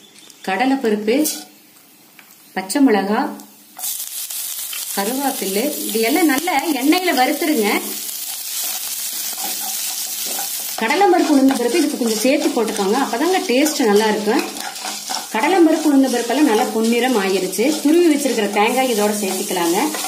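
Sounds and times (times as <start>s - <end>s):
food sizzling in hot oil: 2.4s - 20.0s.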